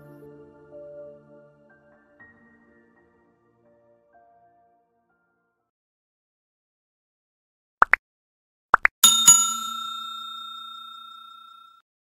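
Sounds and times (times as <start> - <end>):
bell ringing: 9.0 - 11.8.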